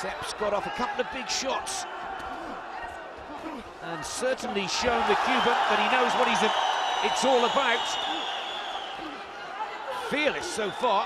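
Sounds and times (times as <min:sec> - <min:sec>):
arena crowd noise: 0:00.0 - 0:11.0
people shouting: 0:04.6 - 0:10.9.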